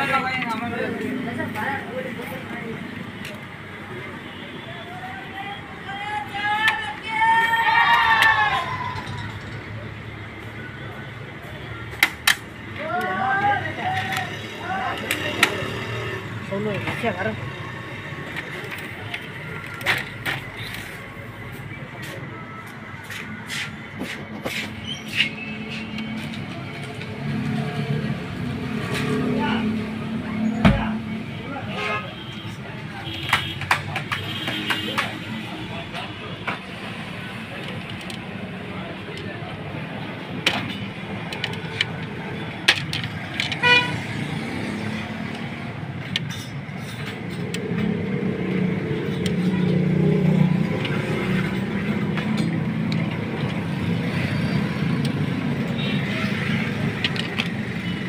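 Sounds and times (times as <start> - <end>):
clicks and knocks of printer parts: 40.4 - 43.7.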